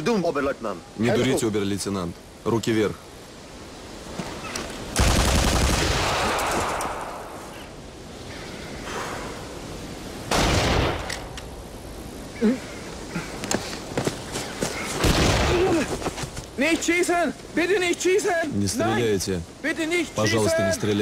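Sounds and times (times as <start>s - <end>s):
gunfire bursts: 5.0s - 7.1s
sharp single gunshot cracks: 10.3s - 11.4s.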